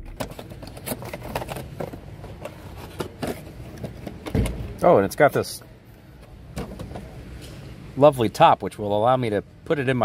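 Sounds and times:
crackling rustling handling noise: 0.0 - 4.3.

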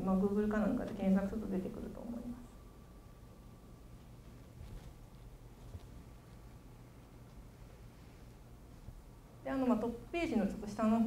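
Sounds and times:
low microphone hum: 0.0 - 11.0.

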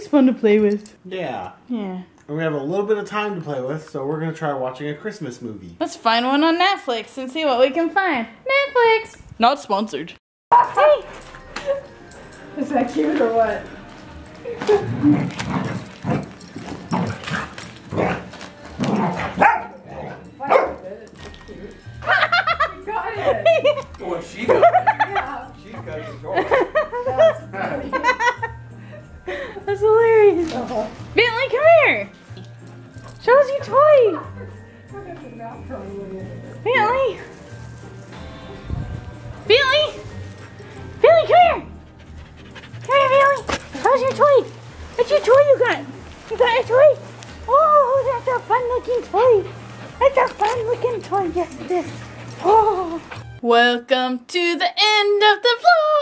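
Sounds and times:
background music: 0.0 - 56.0
dogs barking and yipping: 10.5 - 26.1, 30.4 - 34.6, 39.2 - 53.4
dog whining: 14.2 - 20.8, 47.0 - 53.4.

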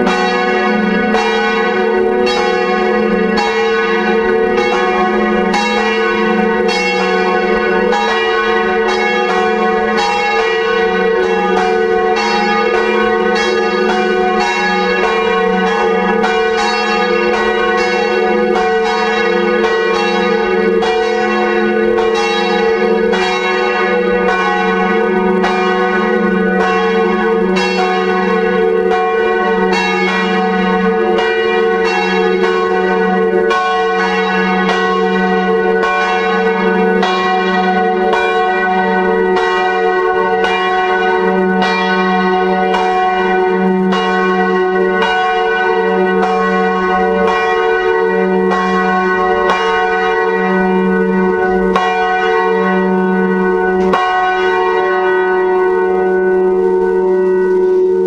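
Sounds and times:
church bells pealing: 0.0 - 58.0.

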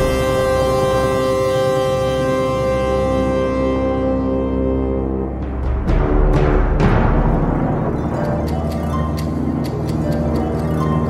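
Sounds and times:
sustained instrumental chord: 0.0 - 11.0.

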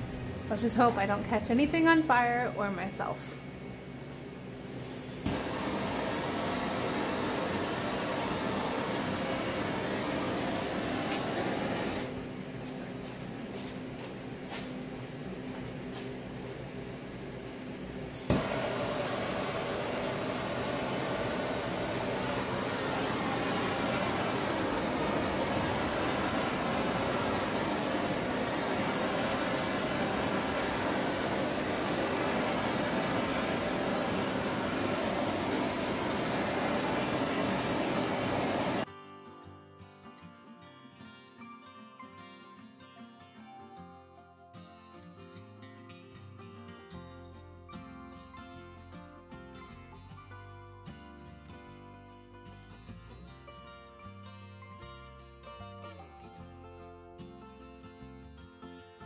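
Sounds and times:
blowtorch hissing: 4.8 - 12.1, 18.1 - 38.9.

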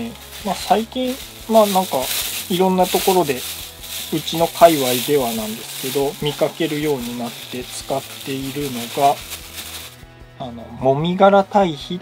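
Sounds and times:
compost poured from plastic bag: 0.0 - 10.0
dry rustling and crinkling: 0.0 - 10.0.

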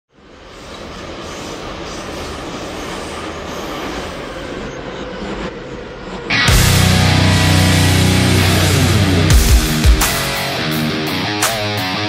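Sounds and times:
steady noisy rumble: 4.9 - 11.4.

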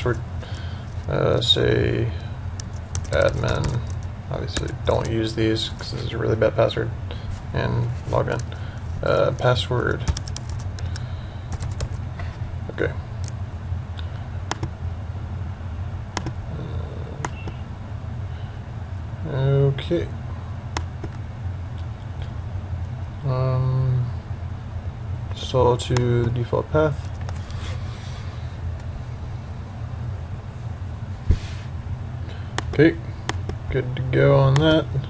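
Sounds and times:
steady low hum: 0.0 - 35.0
short thump: 31.2 - 31.6.

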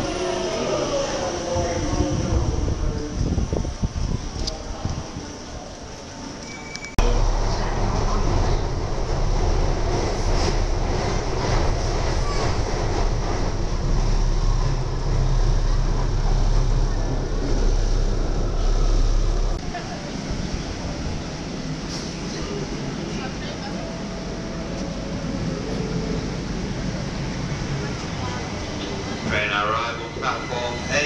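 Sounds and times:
underground train rumble: 0.0 - 31.0
train rattling and clacks: 7.0 - 31.0.

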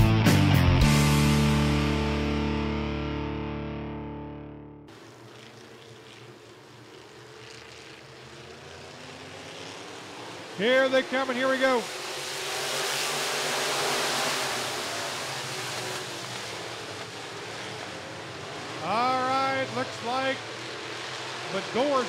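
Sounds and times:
distorted electric guitar chord: 0.0 - 4.9
race car engines humming: 0.0 - 22.0.

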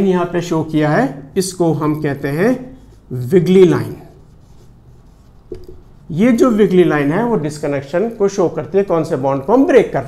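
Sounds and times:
marker scratching on whiteboard: 2.3 - 9.6.

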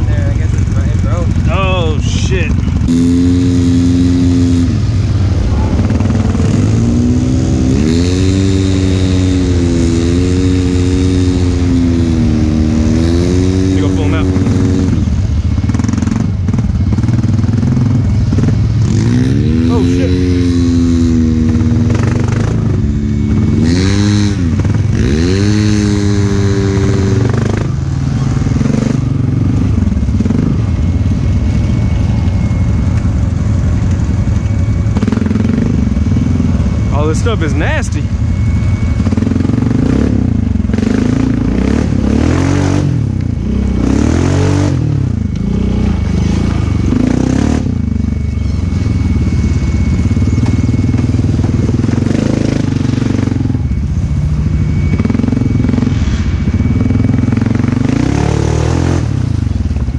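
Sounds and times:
atv engine revving under load: 0.0 - 31.0, 34.9 - 37.9, 39.0 - 49.3, 50.0 - 53.7, 56.8 - 59.8.

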